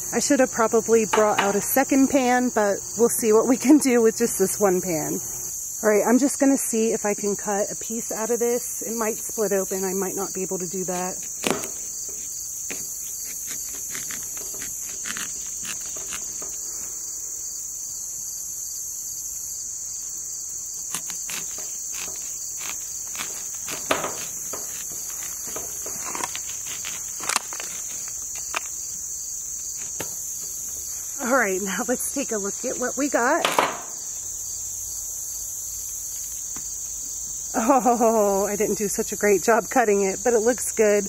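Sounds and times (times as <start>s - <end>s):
insects chirring: 0.0s - 41.0s
knife cracking watermelon rind: 11.2s - 16.7s, 20.8s - 28.8s.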